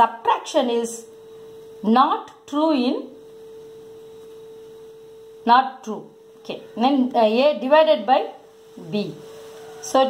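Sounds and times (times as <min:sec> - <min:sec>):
steady mid-pitched hum: 0:00.0 - 0:10.0.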